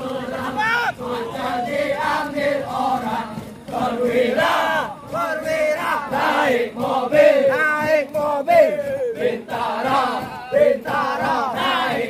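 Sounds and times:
group singing a marching chant: 0.0 - 12.0.

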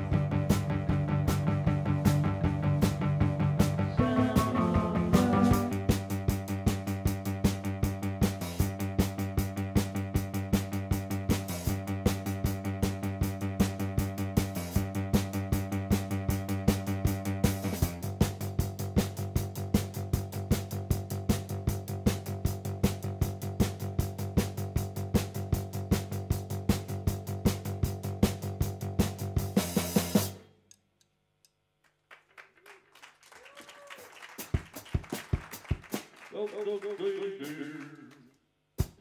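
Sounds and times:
live band music: 0.0 - 30.3
drum kit beat: 0.0 - 30.4, 34.2 - 37.9, 38.8 - 39.0.

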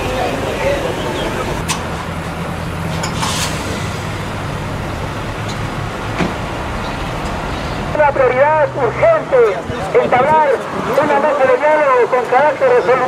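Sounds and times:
road traffic rush: 0.0 - 13.0
vehicle engines humming: 0.0 - 13.0.

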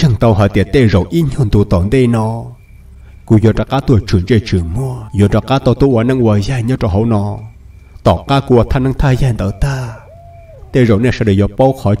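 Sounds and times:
man narrating: 0.0 - 2.6, 3.3 - 12.0.

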